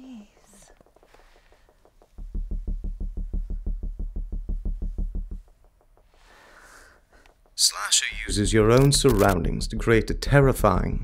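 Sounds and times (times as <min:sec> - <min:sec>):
faint rapid ticking: 0:00.0 - 0:09.5
faint breath: 0:06.1 - 0:07.4.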